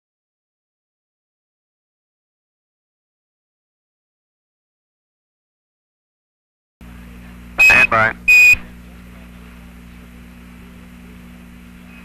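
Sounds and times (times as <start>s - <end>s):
radio hiss and hum: 6.8s - 12.0s
short high beeps: 7.6s - 8.7s
clipped word over radio: 7.6s - 8.8s.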